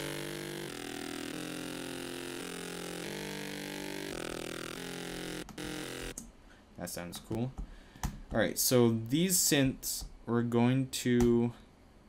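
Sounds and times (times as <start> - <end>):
synthesizer sustained chords: 0.0 - 6.2.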